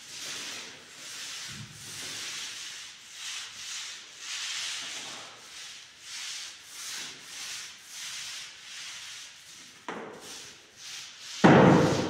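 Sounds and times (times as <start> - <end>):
paint roller rubbing on wall: 0.0 - 12.0.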